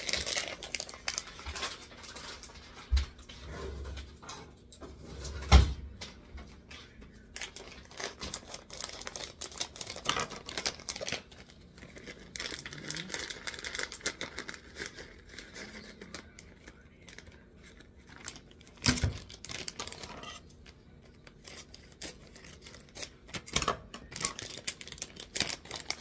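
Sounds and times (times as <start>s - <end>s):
plastic bag crinkling: 0.0s - 2.9s, 7.3s - 26.0s.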